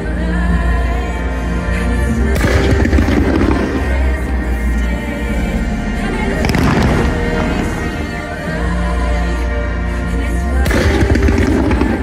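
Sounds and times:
loud music: 0:00.0 - 0:12.0
fireworks crackling bursts: 0:02.4 - 0:04.7, 0:06.4 - 0:08.3, 0:10.7 - 0:12.0.

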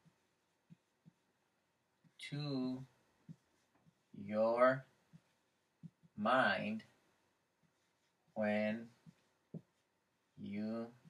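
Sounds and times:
faint soft taps: 0:03.2 - 0:04.0, 0:09.0 - 0:09.8.

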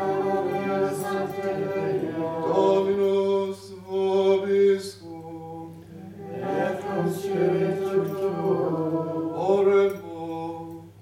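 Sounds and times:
unaccompanied plainchant singing: 0:00.0 - 0:11.0.

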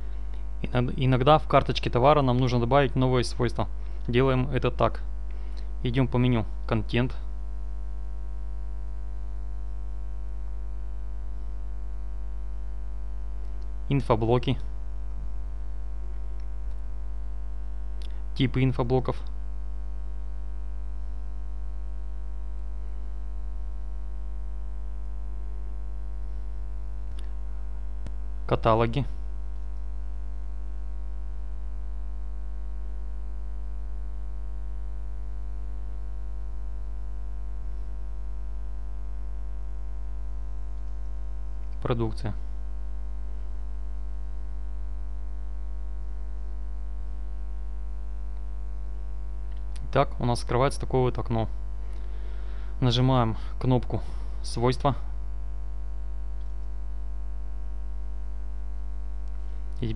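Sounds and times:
electrical mains hum: 0:00.0 - 0:59.9.

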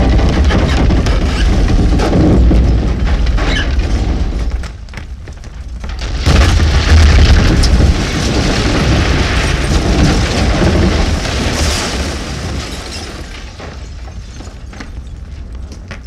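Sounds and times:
fire roaring: 0:00.0 - 0:15.9
deep explosion boom: 0:06.0 - 0:12.6.

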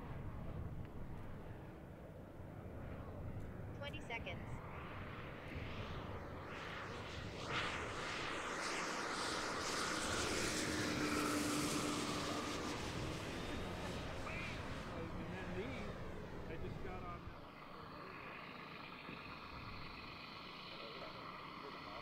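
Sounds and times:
model plane motor and propeller whir: 0:00.0 - 0:22.0.

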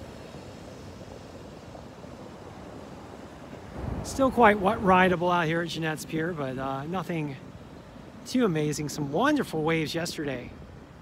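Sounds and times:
surf breaking on beach: 0:00.0 - 0:11.0.

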